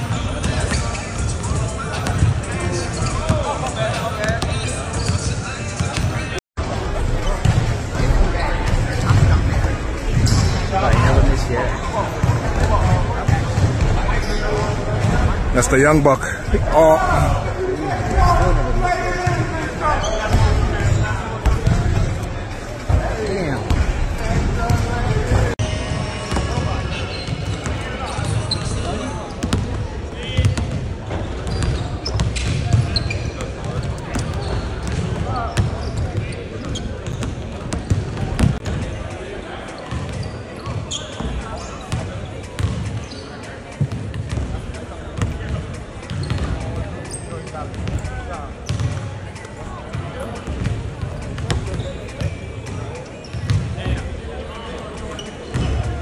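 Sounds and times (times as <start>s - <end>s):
people talking indistinctly: 0.0s - 56.0s
basketballs bouncing on wooden floor: 42.6s - 43.0s, 48.7s - 49.0s, 50.0s - 52.4s, 53.3s - 54.0s.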